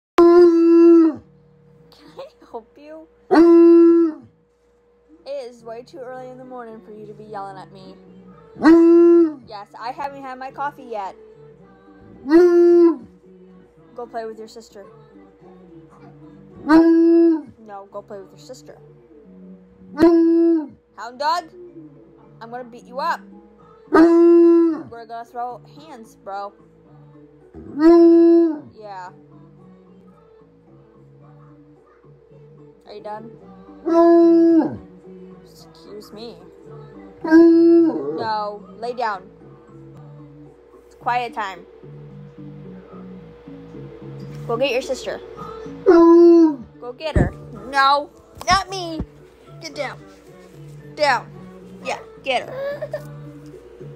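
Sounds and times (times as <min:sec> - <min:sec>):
dog howling: 0:00.2 - 0:01.3, 0:03.3 - 0:04.3, 0:08.6 - 0:09.5, 0:12.2 - 0:13.1, 0:16.6 - 0:17.5, 0:20.0 - 0:20.8, 0:23.9 - 0:25.0, 0:27.6 - 0:28.8, 0:33.8 - 0:34.9, 0:37.2 - 0:38.5, 0:45.6 - 0:46.8.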